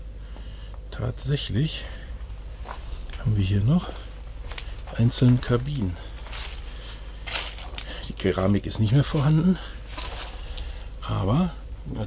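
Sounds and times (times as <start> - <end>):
footsteps on dry leaves: 1.9 - 11.0.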